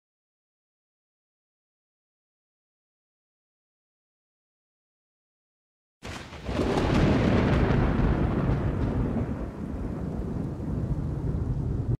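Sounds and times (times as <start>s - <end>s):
thunder crack and rumble: 6.0s - 12.0s.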